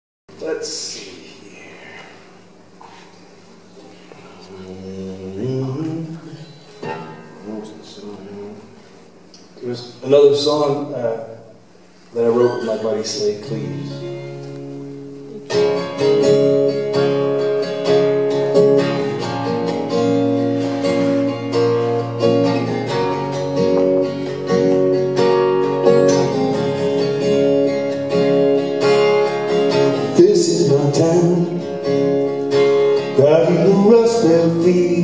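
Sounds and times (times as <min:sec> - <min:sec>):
acoustic guitar strumming: 0:03.9 - 0:08.8, 0:12.2 - 0:35.0.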